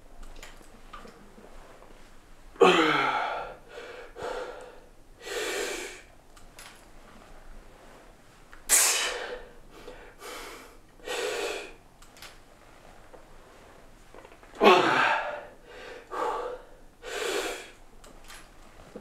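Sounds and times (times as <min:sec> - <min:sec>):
man breathing hard: 0:02.7 - 0:06.1, 0:09.0 - 0:11.8, 0:14.6 - 0:17.8.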